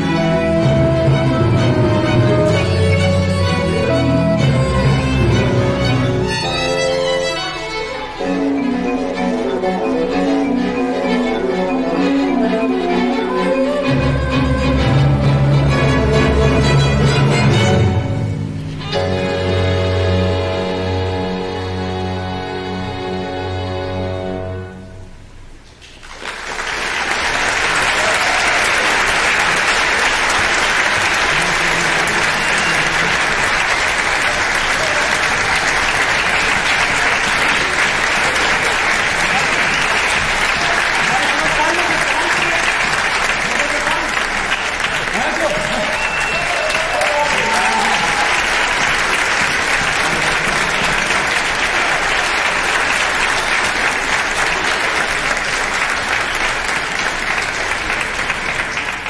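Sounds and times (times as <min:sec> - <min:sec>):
audience applauding: 0:25.9 - 0:59.0.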